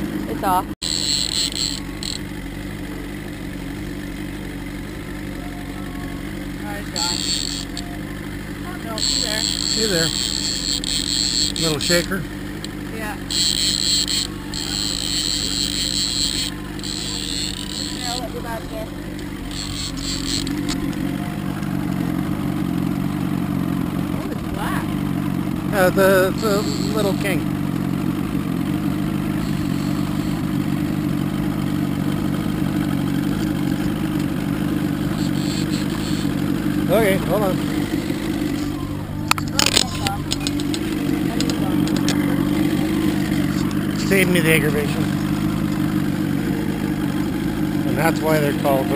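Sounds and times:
outboard motor running: 0.0 - 48.9
fishing reel whirring: 0.8 - 2.5, 6.9 - 8.1, 8.8 - 21.1, 26.3 - 27.4, 29.1 - 30.8, 33.3 - 38.8, 39.5 - 48.9
sharp knocks and clicks: 39.3 - 42.2.

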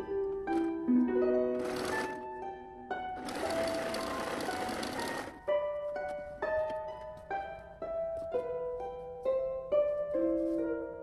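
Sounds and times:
plucked harp-like music: 0.0 - 11.0
sewing machine stitching: 1.6 - 2.2, 3.2 - 5.4.

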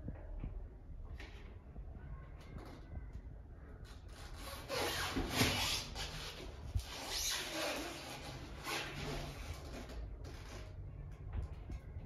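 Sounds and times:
hand scraping a door frame: 3.9 - 11.4.

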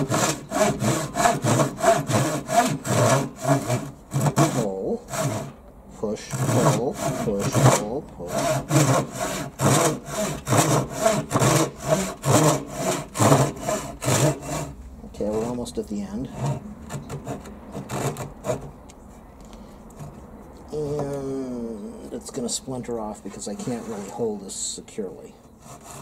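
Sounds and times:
hand saw cutting wood: 0.0 - 18.8, 23.4 - 24.4, 25.5 - 26.0.

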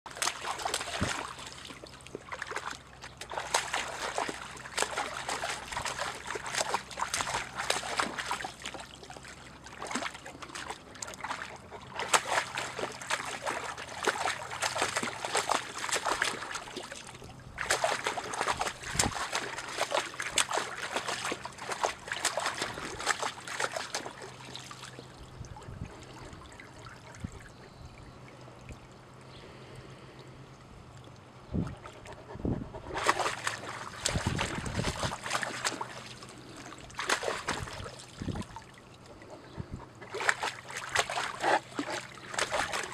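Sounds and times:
dog splashing in a puddle: 0.1 - 25.1, 31.8 - 42.9.

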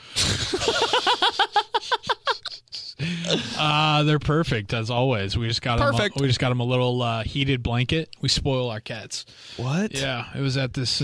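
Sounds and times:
man bursting into laughter: 0.2 - 3.6.

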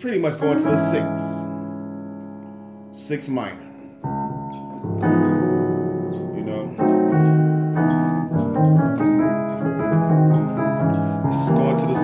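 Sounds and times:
piano chords on keyboard: 0.0 - 12.0.

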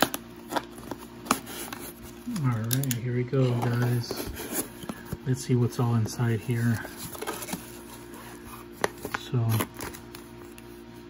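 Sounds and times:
paper handled in cardboard box: 0.0 - 10.9
low steady hum: 0.0 - 11.0.

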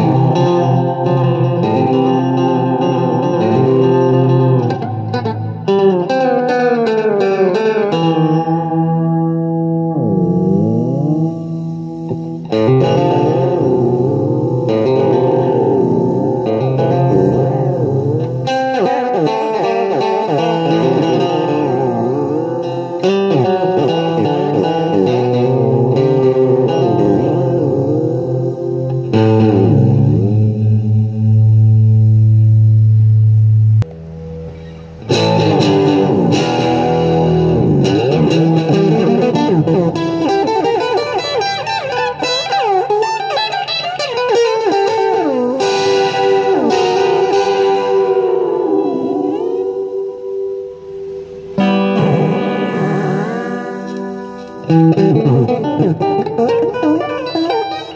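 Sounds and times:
fuzz electric guitar warbling: 0.0 - 57.9.

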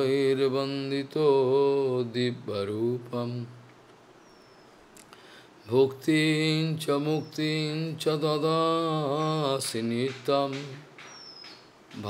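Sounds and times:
man chanting melodically: 0.0 - 3.6, 5.7 - 11.0.

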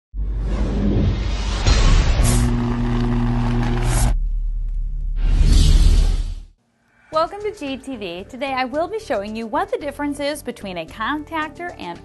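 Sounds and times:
loud rushing noise: 0.4 - 4.2.

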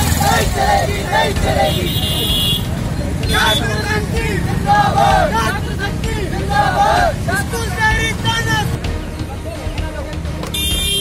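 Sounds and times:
young men shouting slogans: 0.0 - 2.4, 3.1 - 8.8
street traffic rumble: 0.0 - 11.0.

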